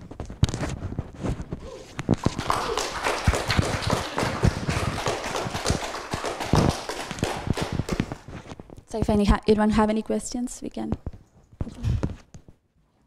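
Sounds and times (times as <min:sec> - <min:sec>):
audience applauding: 0:02.2 - 0:08.4.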